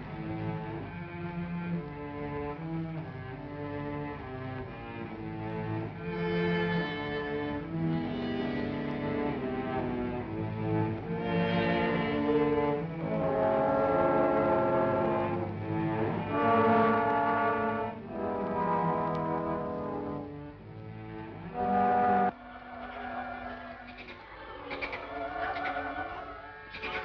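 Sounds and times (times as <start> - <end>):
orchestral strings playing chords: 0.0 - 22.8.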